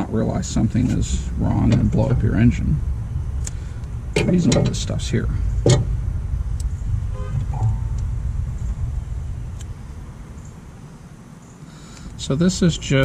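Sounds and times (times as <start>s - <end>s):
passing motor vehicle rumble: 0.0s - 13.0s
short tone: 7.1s - 8.1s.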